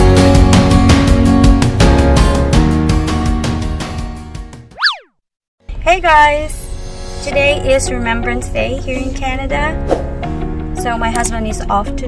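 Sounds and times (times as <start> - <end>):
cartoon sound effect: 4.7 - 5.1
background music: 5.7 - 12.0.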